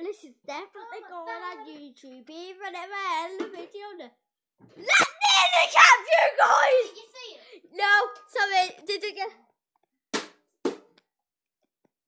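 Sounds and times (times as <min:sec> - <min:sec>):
sharp knocks on hard surface: 0:10.1 - 0:11.0.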